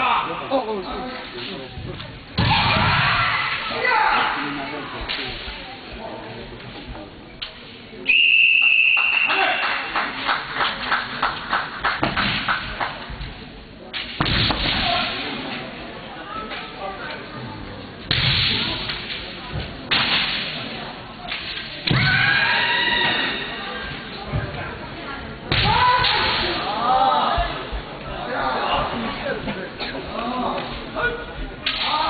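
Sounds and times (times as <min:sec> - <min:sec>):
faint murmur of voices: 0:00.0 - 0:08.6, 0:09.3 - 0:32.0
sharp crack: 0:13.9 - 0:15.3, 0:18.1 - 0:19.3, 0:19.9 - 0:22.2
bamboo swords striking: 0:14.0 - 0:15.2, 0:18.1 - 0:19.2, 0:19.9 - 0:22.2, 0:25.5 - 0:26.6
fencers' shouts: 0:21.8 - 0:23.6, 0:25.5 - 0:27.6.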